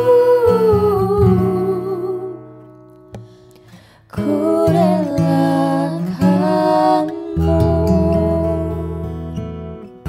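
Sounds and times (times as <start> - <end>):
soft acoustic accompaniment chords: 0.0 - 10.0
woman singing a long note: 4.2 - 9.0.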